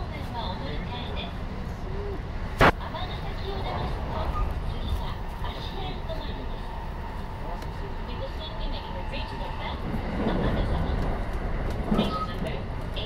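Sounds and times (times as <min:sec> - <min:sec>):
train wheels rumbling on rail: 0:00.0 - 0:13.0.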